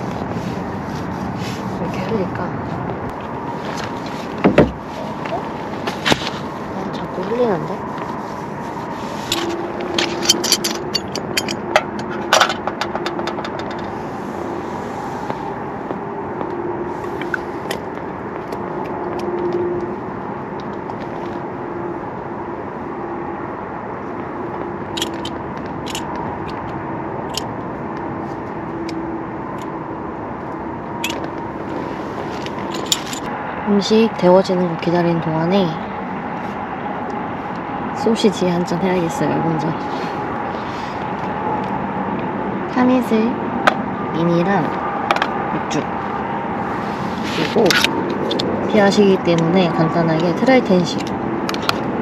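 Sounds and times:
clicks and rattles of handled items: 9.3 - 14.0, 24.9 - 27.5, 32.4 - 33.3.

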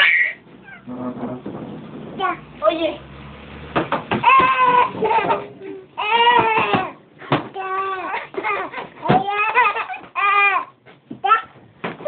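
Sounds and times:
baby squealing: 0.0 - 0.9
baby vocal sounds: 4.2 - 7.0.

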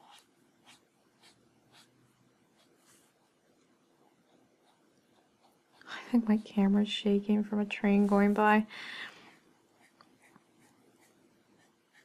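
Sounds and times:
marker scratching on paper: 0.0 - 2.0, 9.8 - 12.0.

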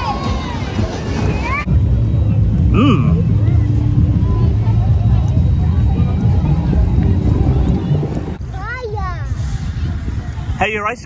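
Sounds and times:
fairground ride with voices: 0.0 - 11.0
wind buffeting microphone: 0.0 - 11.0
short vocal sound: 2.7 - 3.3.

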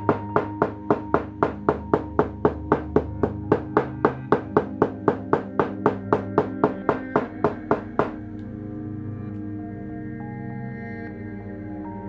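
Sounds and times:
background music with sustained tones: 0.0 - 12.0.

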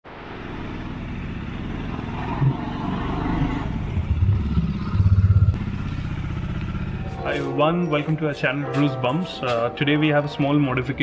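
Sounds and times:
motorcycle engine running: 0.5 - 7.8.

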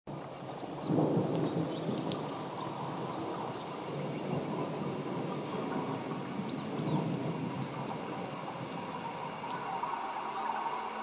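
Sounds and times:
low thunder rumble: 0.1 - 10.3
rain falling: 0.1 - 11.0.

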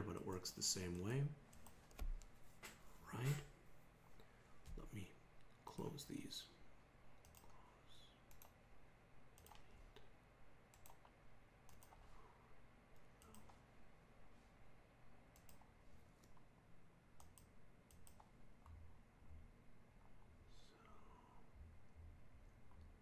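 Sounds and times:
faint computer mouse clicks: 7.2 - 7.6, 8.3 - 8.6, 9.4 - 10.1, 10.7 - 12.0, 15.4 - 16.4, 17.2 - 18.3.

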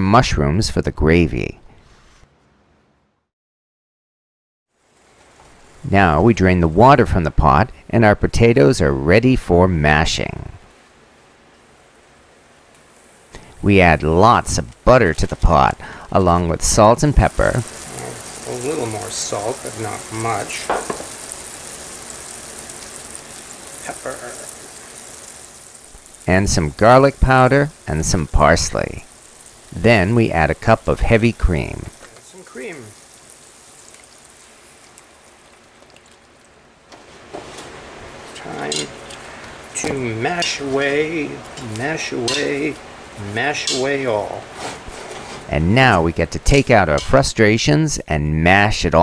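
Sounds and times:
faint steady hiss: 4.7 - 49.0
cream trickling into pot: 17.2 - 36.6.

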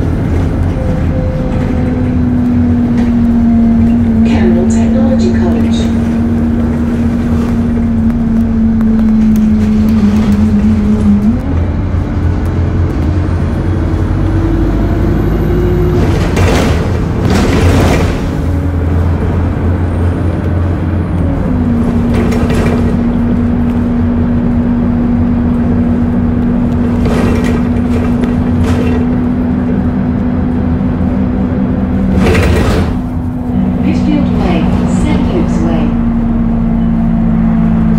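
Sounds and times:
bus engine drone with whine: 0.0 - 37.9.

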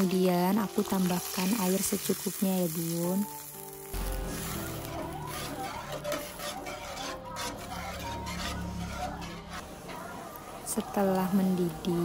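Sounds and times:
metal spatula scraping wok: 3.9 - 12.0.

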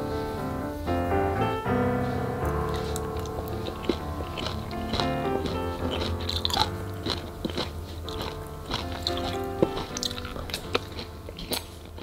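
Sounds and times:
soft piano music: 0.0 - 12.0
crunchy chewing: 2.4 - 12.0.

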